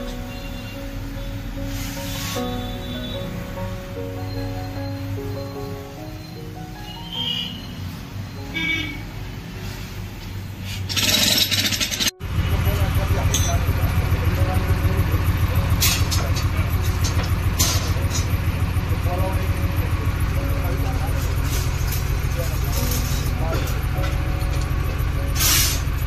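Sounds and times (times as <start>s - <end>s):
diesel engine running: 0.0s - 26.0s.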